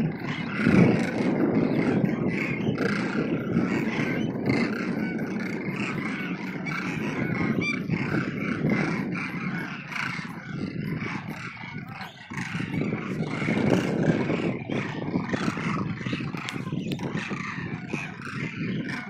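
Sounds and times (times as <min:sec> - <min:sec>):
flock of cranes calling: 0:00.0 - 0:19.0.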